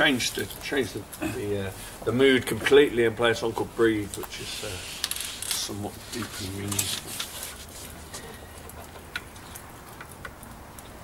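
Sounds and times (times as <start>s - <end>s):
wood fire crackling: 0.0s - 11.0s.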